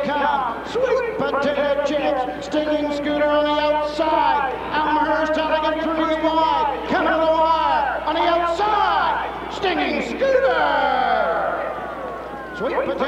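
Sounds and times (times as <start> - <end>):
race announcer calling: 0.0 - 13.0.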